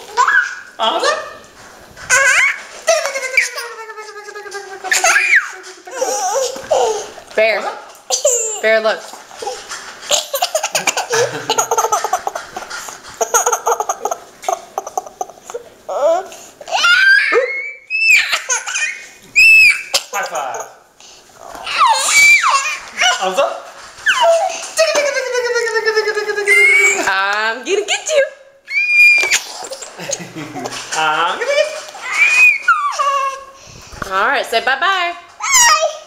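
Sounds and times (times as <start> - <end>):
toddler laughing: 0.0 - 0.7, 2.1 - 7.2, 9.4 - 20.8, 24.1 - 27.1
toddler squealing: 4.8 - 7.0, 16.7 - 20.0, 21.6 - 23.2, 24.0 - 25.0, 26.4 - 27.1, 28.7 - 29.8, 32.0 - 33.6, 35.4 - 36.0.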